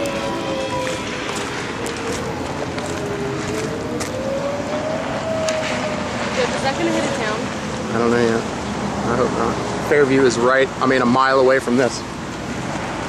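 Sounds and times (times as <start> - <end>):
humming tone shifting in pitch: 0.0 - 7.2
vehicle road and engine noise: 0.0 - 13.0.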